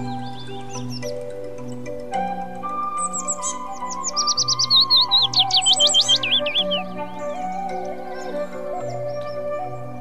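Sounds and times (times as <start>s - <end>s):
bird chirping: 0.0s - 2.0s, 2.7s - 10.0s.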